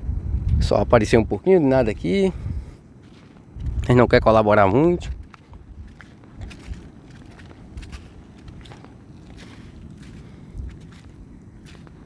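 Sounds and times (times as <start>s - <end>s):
low steady rumble: 0.0s - 12.0s
footsteps on sand: 1.8s - 12.0s.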